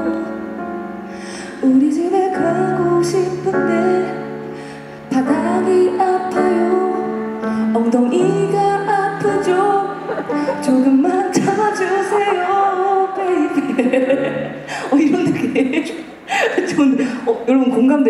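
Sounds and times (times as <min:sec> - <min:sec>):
woman singing wordless melody: 0:00.0 - 0:16.0
sustained keyboard chords: 0:05.2 - 0:15.6.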